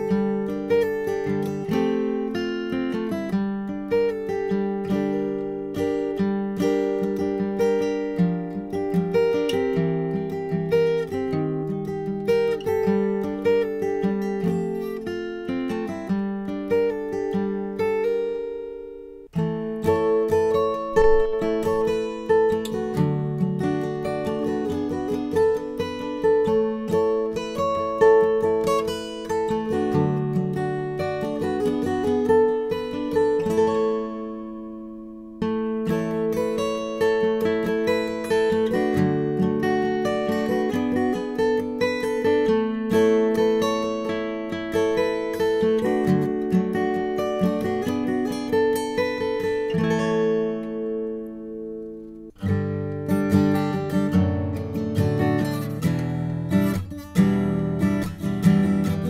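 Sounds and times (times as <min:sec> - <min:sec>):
acoustic guitar picking: 0:00.0 - 0:59.0.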